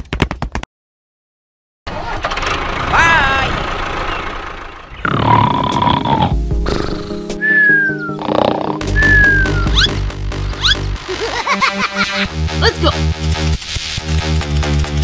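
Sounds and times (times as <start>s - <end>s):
cartoon snore: 5.0s - 7.3s, 8.1s - 8.8s
background music: 5.6s - 15.0s
falling whistle: 7.4s - 8.2s, 8.9s - 10.0s.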